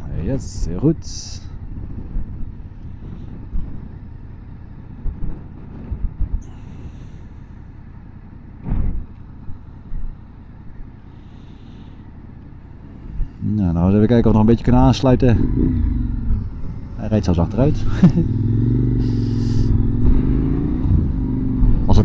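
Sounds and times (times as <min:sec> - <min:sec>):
motorcycle rumble: 0:00.0 - 0:22.0
wind buffeting microphone: 0:00.0 - 0:22.0.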